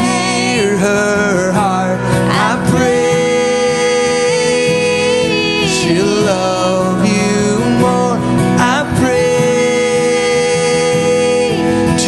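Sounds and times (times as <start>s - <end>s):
acoustic guitar: 0.0s - 12.0s
person singing: 0.0s - 12.0s.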